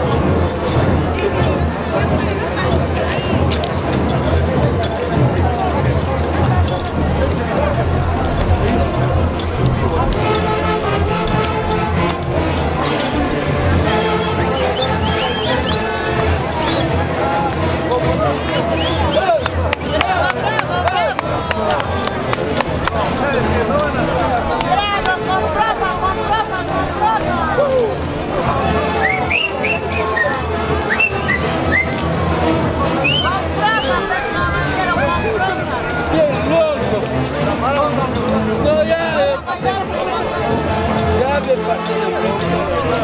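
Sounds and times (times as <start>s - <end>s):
crowd voices: 0.0s - 43.0s.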